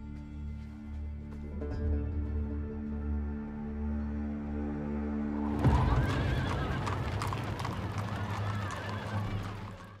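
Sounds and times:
horse hooves clip-clopping: 5.6s - 10.0s.

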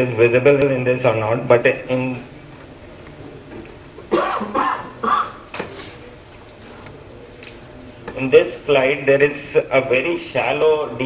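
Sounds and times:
man coughing into microphone: 4.1s - 5.5s.

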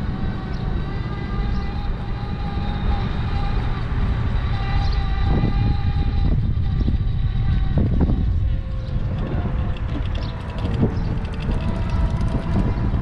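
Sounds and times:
faint steady motor whine: 0.0s - 13.0s
wind rumbling on microphone: 0.0s - 13.0s.

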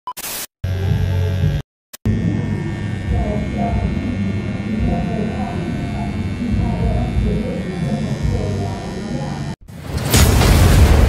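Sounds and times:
low hum: 0.7s - 9.6s.

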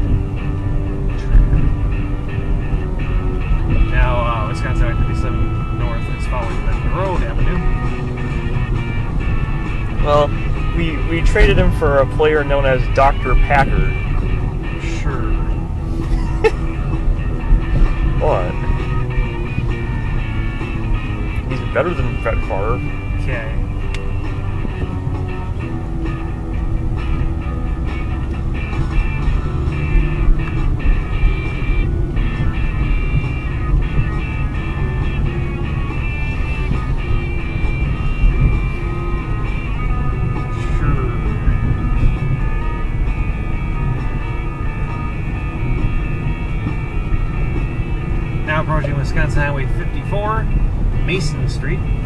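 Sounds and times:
car driving rumble: 0.0s - 52.0s
rock music: 0.0s - 52.0s.

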